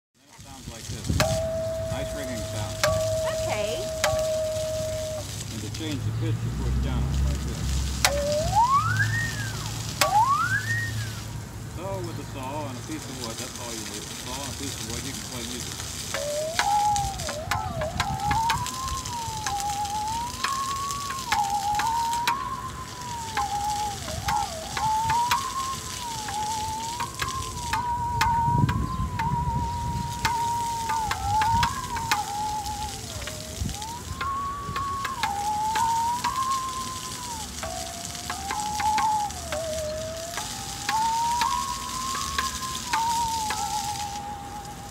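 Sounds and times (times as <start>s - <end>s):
musical saw melody: 0.4s - 44.9s.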